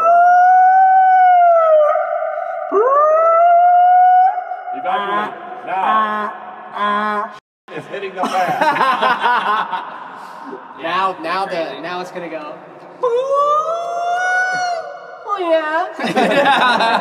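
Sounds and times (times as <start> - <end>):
man's wavering cries: 3.4 - 7.3.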